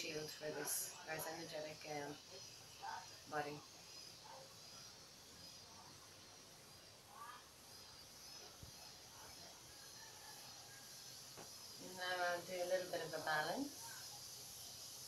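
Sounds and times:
faint high chirps: 2.0 - 12.8.

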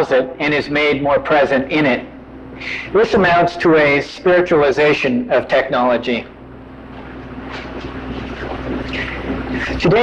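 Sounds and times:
faint steady hum: 0.0 - 10.0
low rumble and hiss: 0.0 - 10.0.

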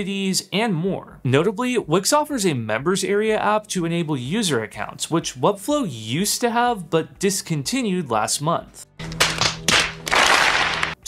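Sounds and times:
crowd applauding: 9.2 - 11.0.

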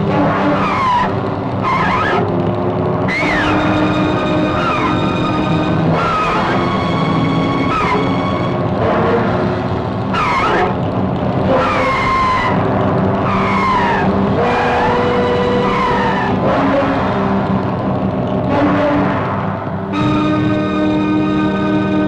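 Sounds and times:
dramatic orchestral music: 0.0 - 22.0
bird of prey screeching: 13.3 - 16.4.

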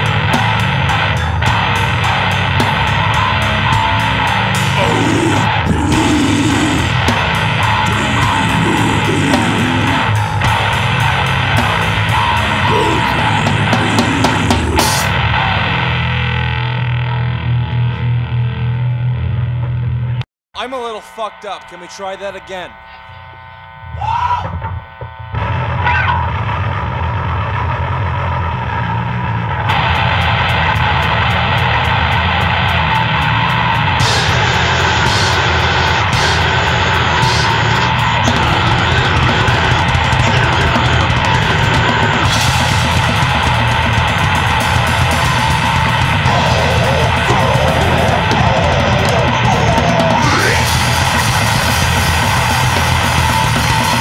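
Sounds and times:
grindcore band playing: 0.0 - 22.8, 25.3 - 54.0.

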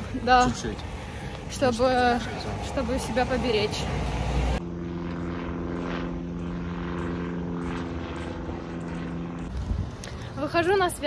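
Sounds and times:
aircraft propeller hum: 0.0 - 11.0
low street rumble: 0.0 - 11.0.

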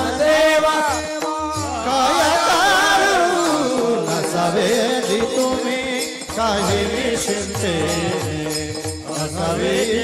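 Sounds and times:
men singing in chorus: 0.0 - 10.0.

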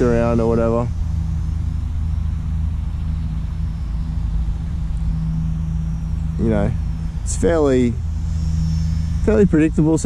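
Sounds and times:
model plane motor buzzing: 0.0 - 10.0
wind rumble on microphone: 0.0 - 10.0.

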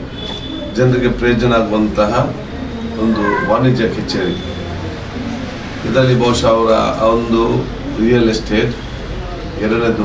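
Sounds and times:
man talking: 3.0 - 4.5, 5.8 - 8.8.

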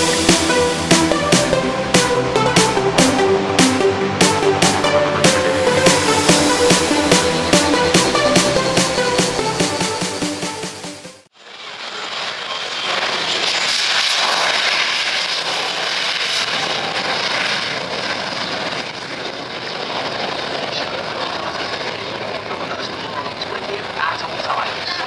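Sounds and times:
jet engine rushing: 0.0 - 25.0.

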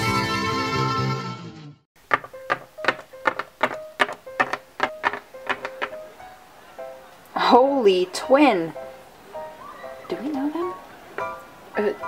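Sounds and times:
plastic toy figures tapping on table: 2.1 - 6.1.

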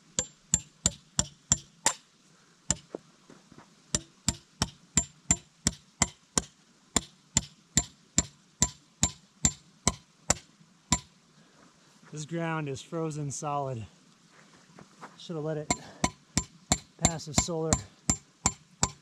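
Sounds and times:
hammer striking metal stake: 0.1 - 2.1, 2.7 - 3.0, 3.9 - 11.1, 15.7 - 19.0.

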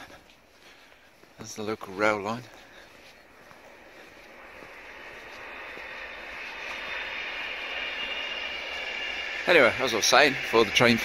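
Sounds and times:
distant passenger train running: 0.0 - 11.0
faint high whine: 0.0 - 11.0.

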